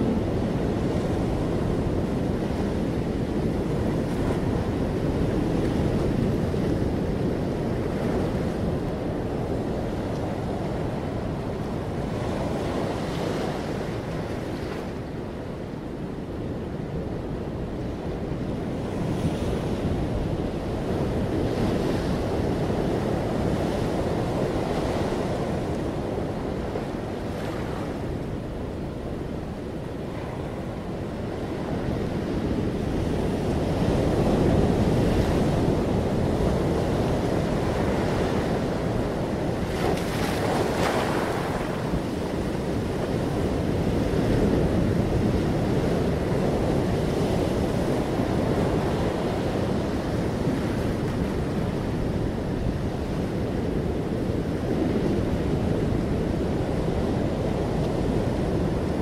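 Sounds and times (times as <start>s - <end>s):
wind buffeting microphone: 0.0s - 59.0s
sea waves washing against rocks: 29.6s - 53.2s.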